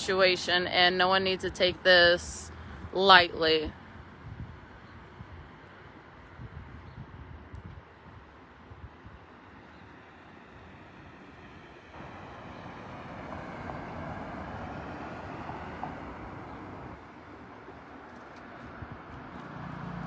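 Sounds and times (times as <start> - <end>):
car driving past: 11.9 - 17.0, 19.2 - 20.0.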